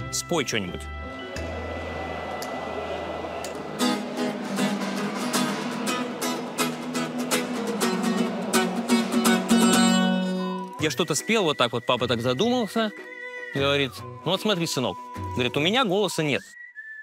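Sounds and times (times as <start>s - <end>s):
acoustic guitar strummed briskly: 4.5s - 10.6s.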